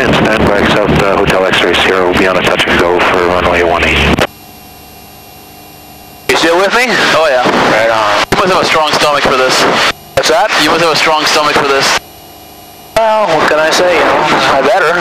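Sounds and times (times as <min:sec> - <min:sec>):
voices over aircraft radio: 0:00.0 - 0:04.3, 0:06.3 - 0:12.1, 0:13.0 - 0:15.0
faint engine drone: 0:00.0 - 0:15.0.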